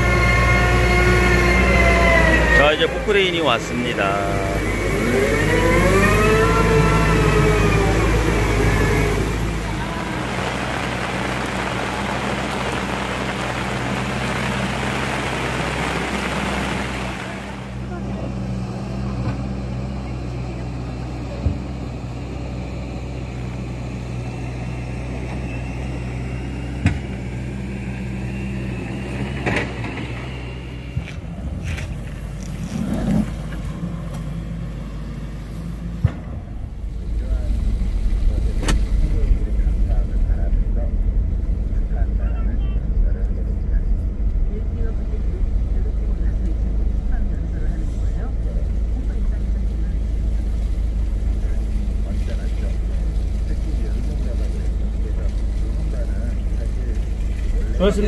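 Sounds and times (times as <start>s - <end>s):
excavator diesel engine droning: 0.0s - 58.0s
hiss: 7.6s - 17.8s.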